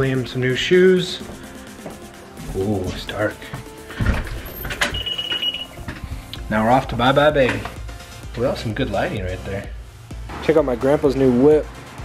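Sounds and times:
short high electronic beep: 0:04.9 - 0:05.8.

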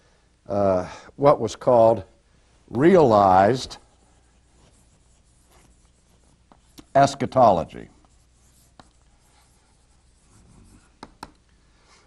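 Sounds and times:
chalk scratching on blackboard: 0:03.4 - 0:11.3
chalk taps: 0:04.0 - 0:11.4.

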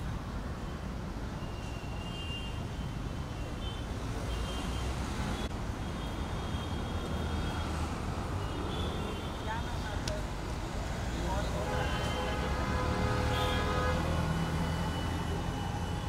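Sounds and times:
road traffic rumble: 0:00.0 - 0:16.0.

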